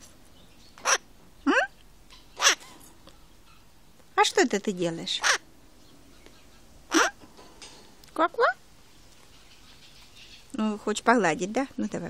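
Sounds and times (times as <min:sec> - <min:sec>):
parrot chirping: 0:00.4 - 0:03.8, 0:05.1 - 0:07.2, 0:08.9 - 0:10.6
parrot questioning mm: 0:06.9 - 0:07.2.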